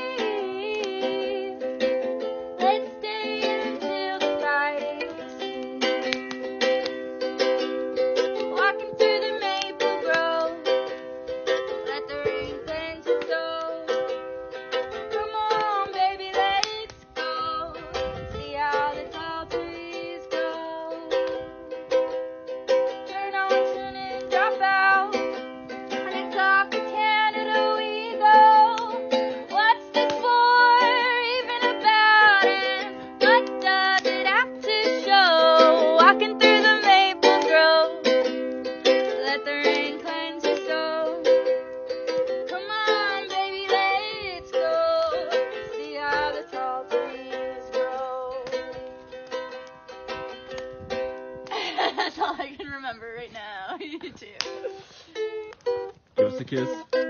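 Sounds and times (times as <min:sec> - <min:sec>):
woman singing: 0:00.0 - 0:06.4, 0:08.2 - 0:14.2, 0:14.8 - 0:21.4, 0:23.0 - 0:48.9
ukulele strumming: 0:00.0 - 0:57.0.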